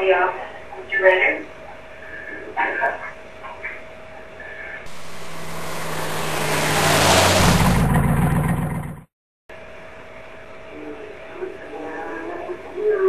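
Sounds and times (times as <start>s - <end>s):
vehicle engine rushing: 4.9s - 9.1s.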